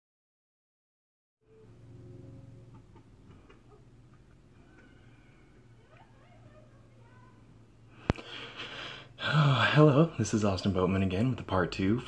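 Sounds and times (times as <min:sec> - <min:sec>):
steady low hum: 0:01.5 - 0:12.0.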